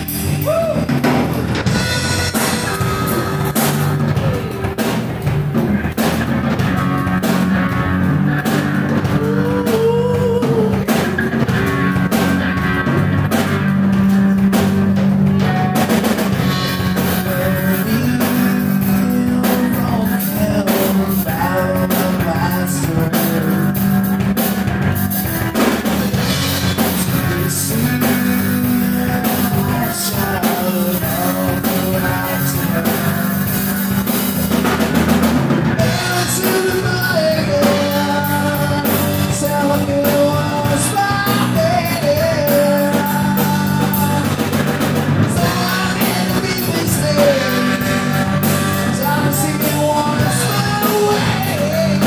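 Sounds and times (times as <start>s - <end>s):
man singing: 0.0s - 1.0s, 8.3s - 13.4s, 16.1s - 34.9s, 35.7s - 52.0s
live rock band: 0.0s - 52.0s.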